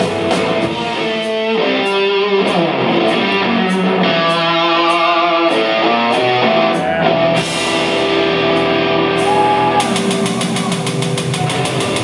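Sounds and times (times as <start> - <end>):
synth rock band playing: 0.0 - 12.0.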